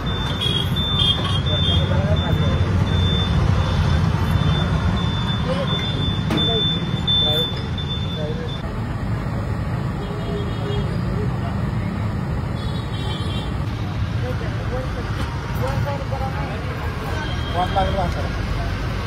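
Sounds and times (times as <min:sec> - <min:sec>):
low street rumble: 0:00.0 - 0:19.0.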